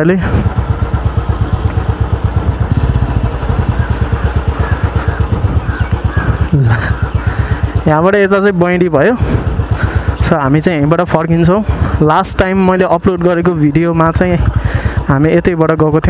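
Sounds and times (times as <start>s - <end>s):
motorcycle engine running: 0.0s - 16.0s.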